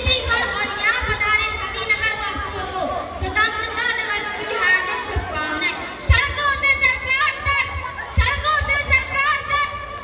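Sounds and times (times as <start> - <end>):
children chattering and calling: 0.0 - 10.0.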